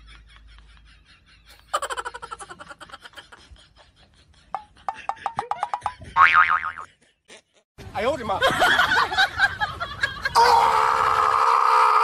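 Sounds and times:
wobbling cartoon boing: 6.2 - 6.8.

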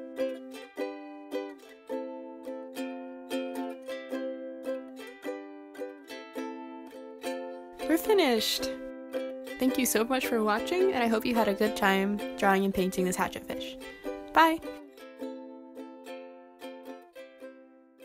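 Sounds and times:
ukulele plucked notes and chords: 0.0 - 18.0.

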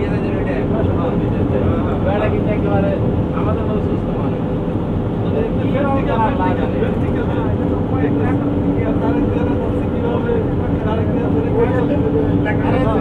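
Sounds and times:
people talking: 0.0 - 13.0
vehicle engine and road noise: 0.0 - 13.0.

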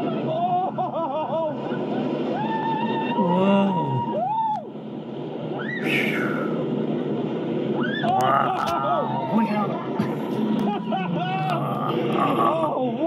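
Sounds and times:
roller coaster train rushing: 0.0 - 13.0
riders screaming: 2.3 - 4.7, 5.6 - 6.6, 7.8 - 9.8.

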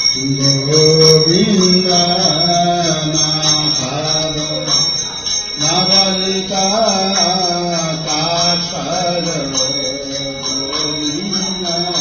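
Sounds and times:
person chanting melodically: 0.0 - 12.0.

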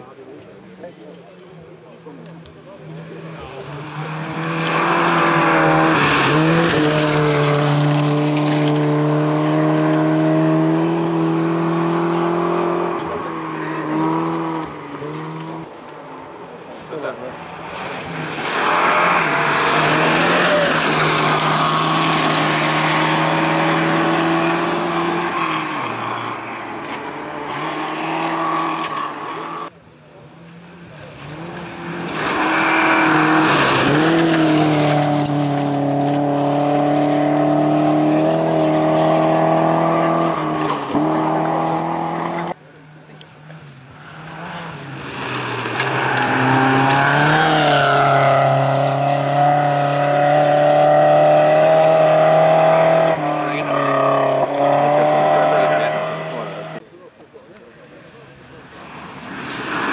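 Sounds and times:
rally car engines at high revs: 0.0 - 15.9, 16.6 - 59.9.

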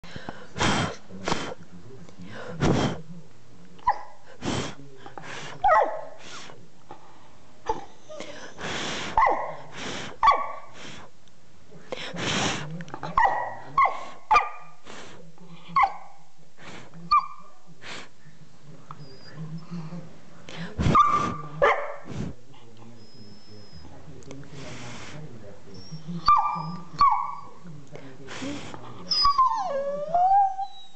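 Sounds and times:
puppy yipping and whining: 7.7 - 8.6, 15.8 - 16.1, 17.1 - 17.5, 23.0 - 24.0, 25.7 - 27.6, 29.0 - 30.9.

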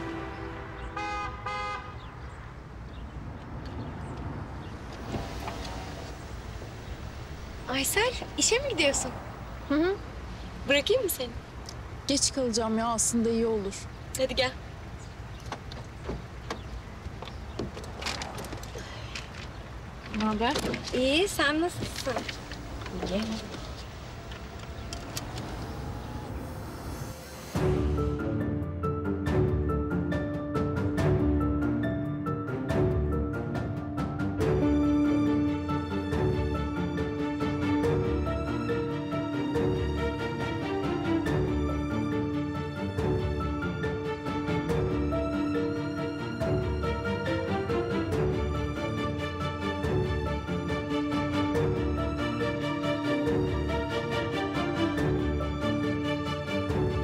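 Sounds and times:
car horn toots: 0.0 - 2.2
traffic noise: 0.0 - 31.9, 32.7 - 57.0.

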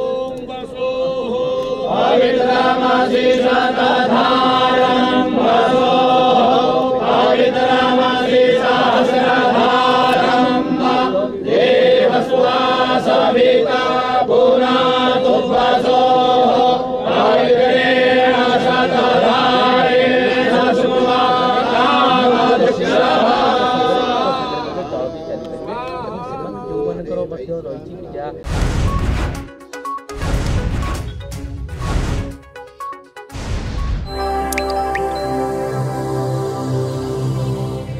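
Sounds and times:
group chanting in unison: 0.0 - 25.2.

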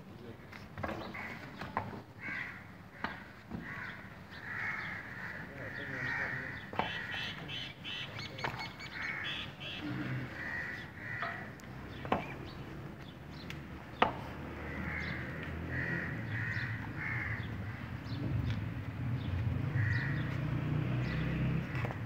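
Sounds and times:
crows cawing: 0.8 - 12.3, 14.1 - 18.2, 19.6 - 22.0
sharp knocks: 6.7 - 7.2, 14.0 - 14.4.

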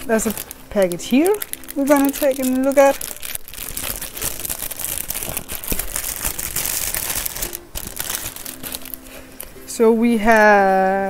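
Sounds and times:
plastic wrapping crinkling: 0.0 - 10.8.

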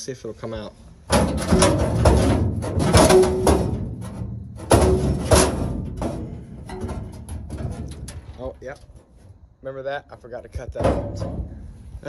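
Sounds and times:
metal panel clanging and rattling: 1.0 - 9.3, 10.5 - 11.9.

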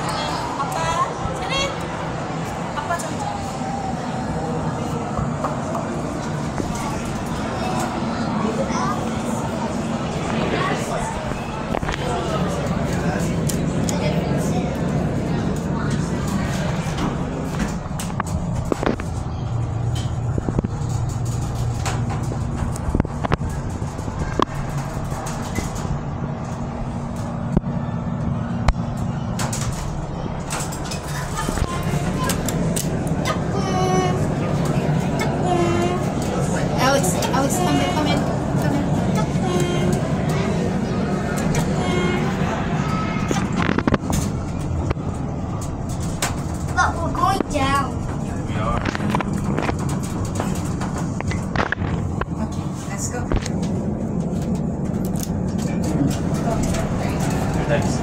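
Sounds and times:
people chatting: 0.0 - 20.7, 29.8 - 45.0, 46.5 - 53.6, 55.5 - 58.0
elevator humming: 0.0 - 58.0.

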